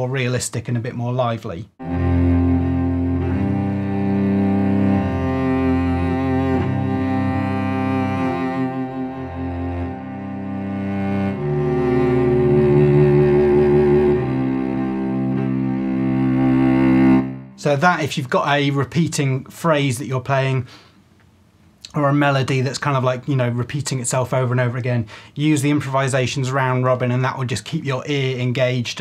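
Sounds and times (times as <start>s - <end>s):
bowed cello notes: 1.8s - 18.1s.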